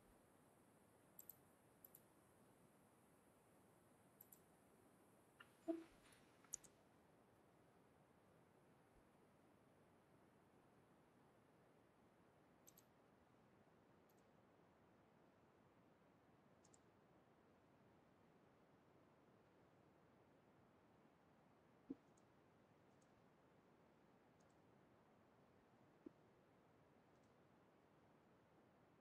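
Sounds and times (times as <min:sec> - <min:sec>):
faint short clicks: 0:01.2 - 0:02.0, 0:05.4 - 0:06.7, 0:12.6 - 0:12.9, 0:16.6 - 0:16.8.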